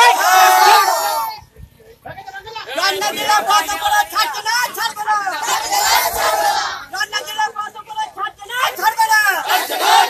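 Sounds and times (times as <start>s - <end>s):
crowd shouting slogans: 0.0s - 1.4s, 5.2s - 7.4s, 8.7s - 10.0s.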